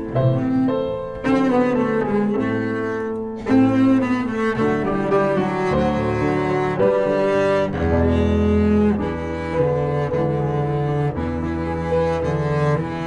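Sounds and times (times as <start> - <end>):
bowed double bass: 0.0 - 13.0
grand piano chords: 0.0 - 13.0.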